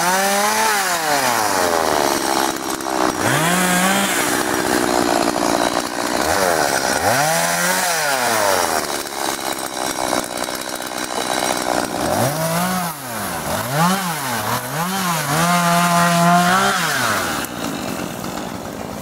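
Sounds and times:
chainsaw revving: 0.0s - 19.0s.

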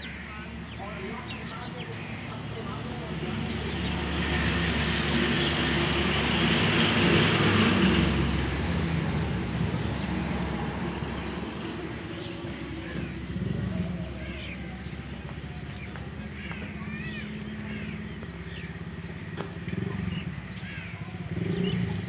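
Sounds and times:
vehicle engine passing by: 2.7s - 22.0s.

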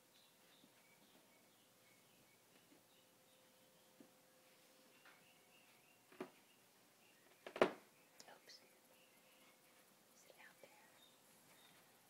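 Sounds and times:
hushed whispering: 8.2s - 11.1s.

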